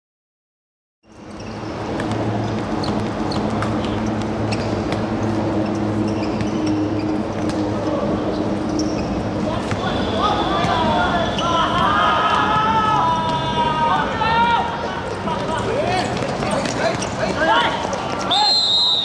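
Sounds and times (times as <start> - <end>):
football kicks and bounces: 1.9 - 5.1
players shouting: 9.4 - 19.0.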